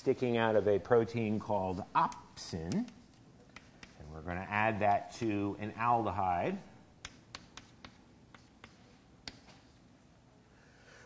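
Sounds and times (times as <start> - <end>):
chalk tapping on blackboard: 1.2 - 5.2, 7.0 - 9.9.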